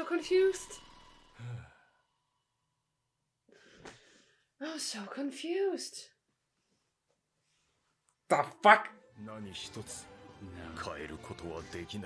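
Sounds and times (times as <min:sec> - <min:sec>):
low sigh: 0:01.3 - 0:02.0.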